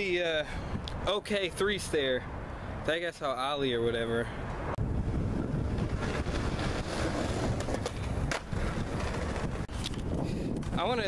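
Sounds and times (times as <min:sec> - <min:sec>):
wind on microphone: 0:04.7 - 0:11.0
skateboard wheels rolling on bricks: 0:05.1 - 0:11.0
skateboard clacks: 0:05.7 - 0:09.7.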